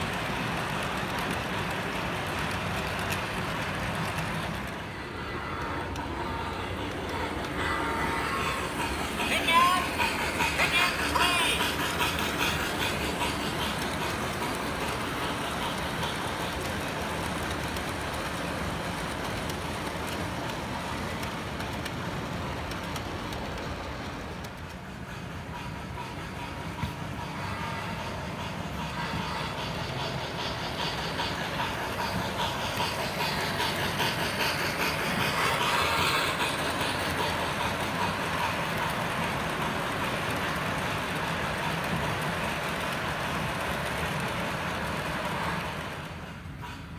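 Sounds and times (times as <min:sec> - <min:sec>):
model train wheels on rails: 0:00.0 - 0:46.9
train steam sound effects: 0:00.0 - 0:46.9.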